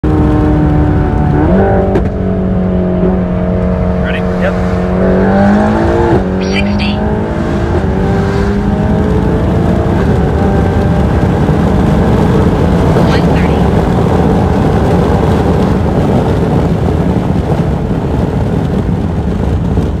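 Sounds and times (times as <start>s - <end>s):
car engine accelerating: 0.0s - 20.0s
wind and road noise: 0.0s - 20.0s.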